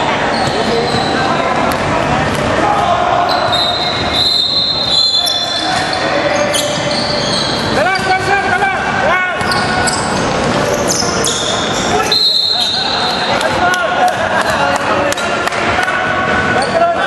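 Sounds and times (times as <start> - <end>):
players' voices: 0.0 - 17.0
referee's whistle blast: 3.3 - 5.9, 11.2 - 13.2.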